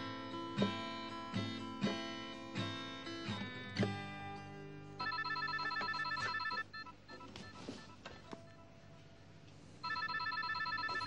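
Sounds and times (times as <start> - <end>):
phone ringtone trilling beeps: 5.0 - 8.6, 9.8 - 11.0.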